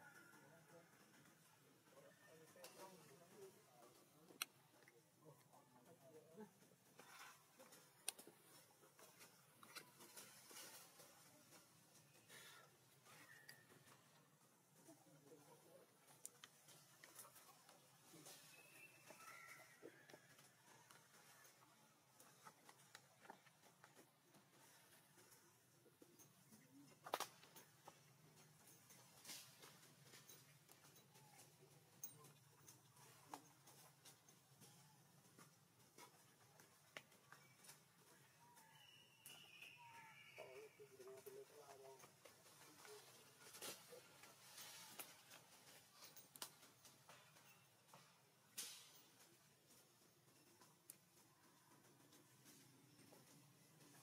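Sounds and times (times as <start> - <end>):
soft rustles: 6.5 - 38.8.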